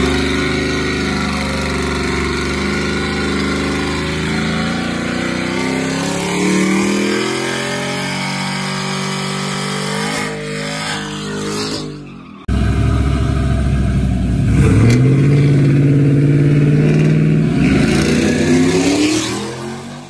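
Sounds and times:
pickup engine running: 0:00.0 - 0:07.2, 0:12.5 - 0:18.5
pickup engines revving: 0:00.0 - 0:20.0.

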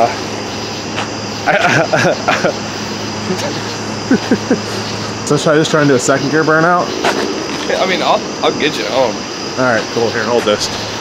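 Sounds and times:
truck engine humming: 0:00.0 - 0:11.0
man laughing: 0:01.4 - 0:05.2.

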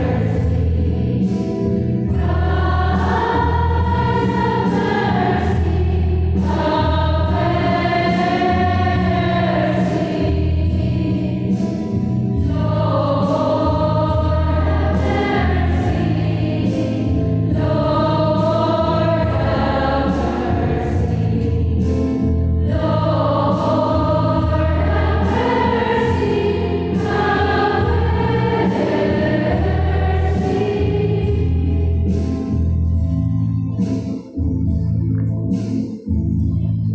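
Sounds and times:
church choir singing a hymn: 0:00.0 - 0:32.9
held low accompanying notes: 0:00.0 - 0:36.9.

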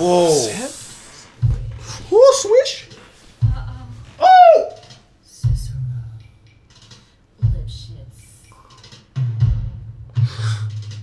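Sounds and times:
deep bass boom: 0:03.4 - 0:04.2
voice singing ooh: 0:04.2 - 0:04.8.

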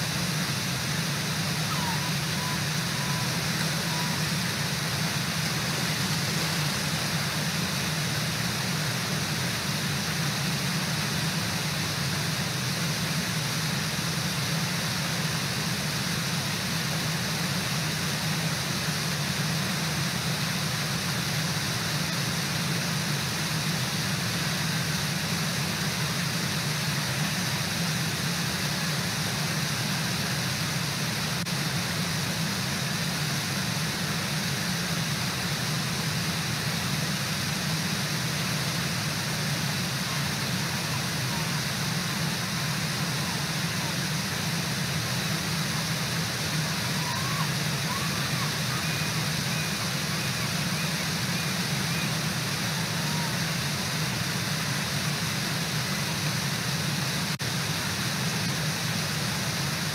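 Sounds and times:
waterfall rushing: 0:00.0 - 0:59.9.

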